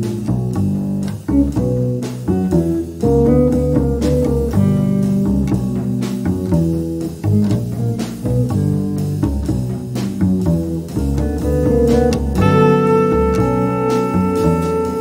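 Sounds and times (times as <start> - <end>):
electric guitar playing jazz: 0.0 - 15.0
plucked upright bass: 0.0 - 15.0.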